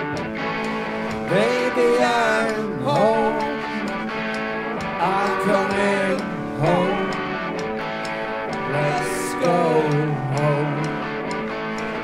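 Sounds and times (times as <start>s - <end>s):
live rock band: 0.0s - 12.0s
pitch-bending guitar phrases: 0.0s - 12.0s.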